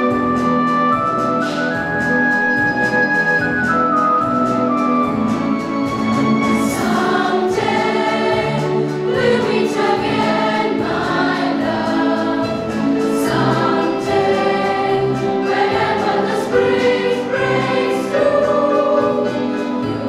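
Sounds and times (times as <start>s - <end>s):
children's choir singing: 6.5s - 20.0s.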